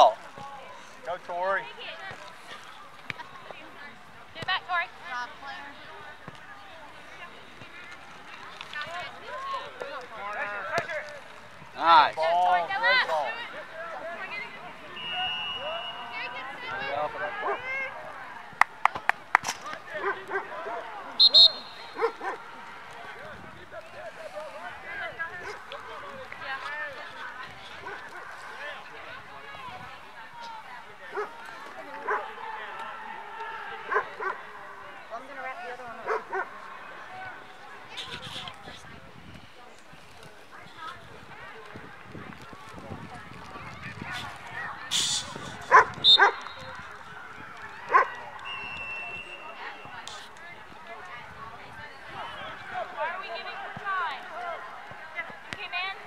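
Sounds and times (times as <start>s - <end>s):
referee whistle blasts: 14.9s - 16.3s, 21.2s - 22.0s, 44.9s - 46.9s, 48.4s - 50.2s
dog barking: 36.0s - 36.5s, 45.7s - 46.4s.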